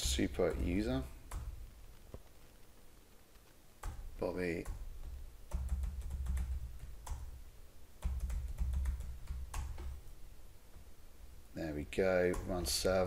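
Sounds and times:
typing on computer keyboard: 3.8 - 7.4, 8.0 - 10.0.

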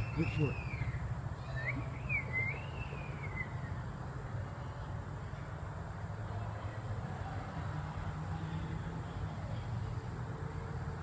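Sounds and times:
bird warbling whistled call: 0.0 - 3.8.

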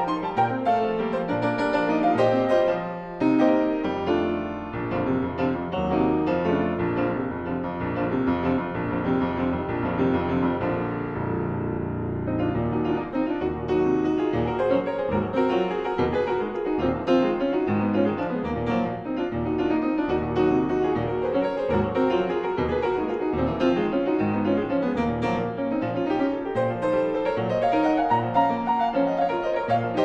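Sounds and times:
grand piano playing: 0.0 - 30.0.

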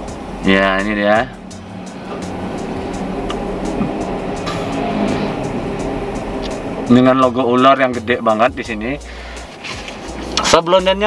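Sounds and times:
background music with light beat: 0.0 - 11.0.

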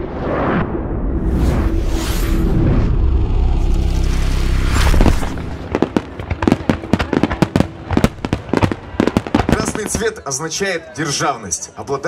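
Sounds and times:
fireworks banging and crackling: 4.7 - 10.4.

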